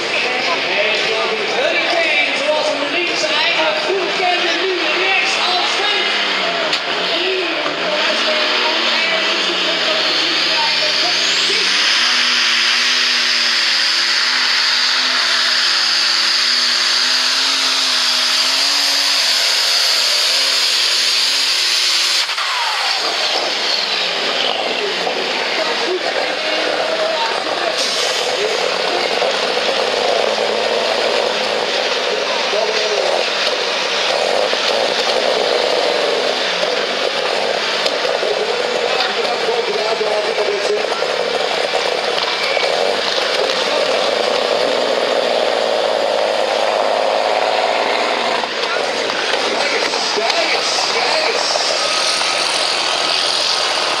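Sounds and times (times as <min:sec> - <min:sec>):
tractor engine running: 0:00.0 - 0:54.0
person speaking: 0:48.6 - 0:52.0.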